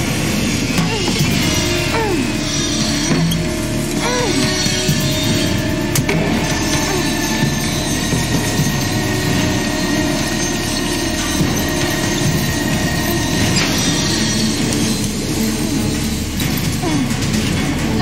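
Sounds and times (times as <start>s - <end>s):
industrial machinery running: 0.0s - 18.0s.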